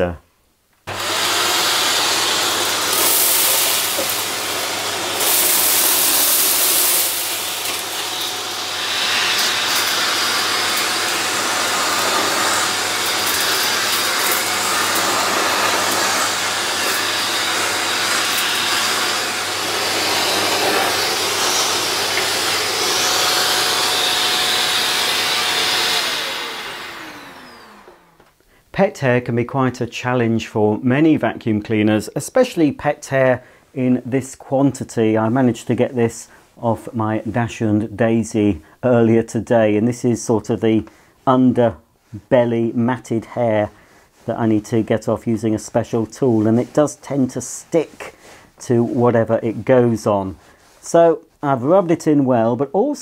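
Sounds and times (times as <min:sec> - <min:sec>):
vacuum cleaner running: 0:00.9 - 0:28.3
vacuum motor winding down: 0:00.9 - 0:28.3.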